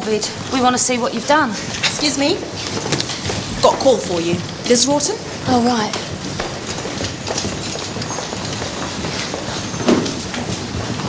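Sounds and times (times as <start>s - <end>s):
busy hospital noise: 0.0s - 11.0s
footsteps: 0.0s - 11.0s
knocks and clatter: 1.2s - 11.0s.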